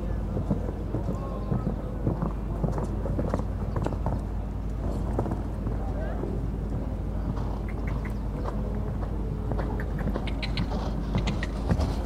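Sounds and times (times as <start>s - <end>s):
horse hoofbeats on sand: 0.0s - 12.0s
steady low hum: 0.0s - 12.0s.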